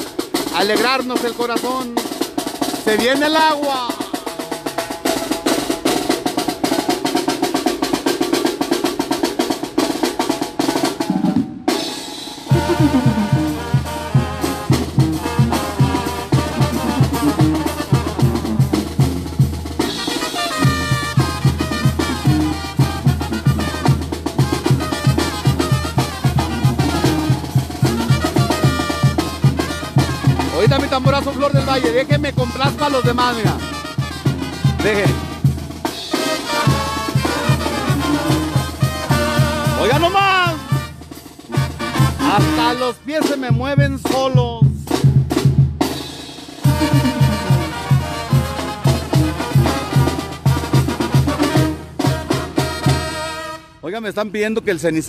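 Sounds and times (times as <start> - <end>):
brass melody: 0.0 - 44.2, 45.3 - 54.3
snare drum roll: 0.0 - 53.4
bass drum: 12.4 - 46.0, 46.6 - 53.3
bass line: 12.5 - 19.8, 20.6 - 33.6, 34.4 - 35.3, 46.6 - 50.0.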